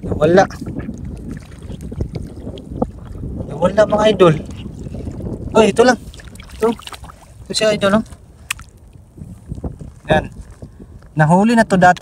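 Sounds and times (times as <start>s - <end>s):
shallow water stirring: 0.0s - 11.2s
wind buffeting microphone: 0.0s - 12.0s.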